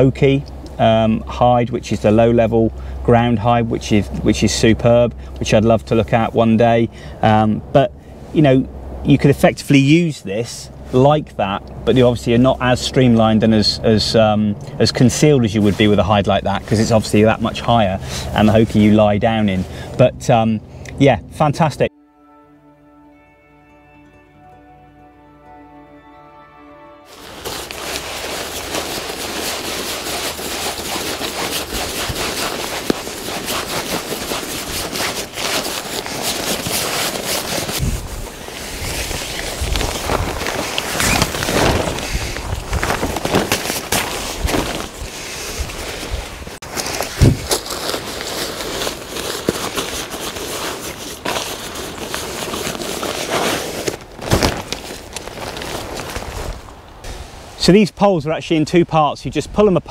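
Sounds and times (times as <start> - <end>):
fabric rustling and crinkling: 14.9 - 19.7, 27.1 - 57.1.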